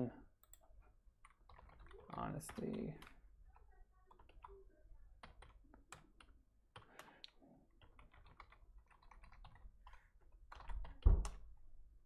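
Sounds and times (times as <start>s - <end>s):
keyboard typing: 0.4s - 11.5s.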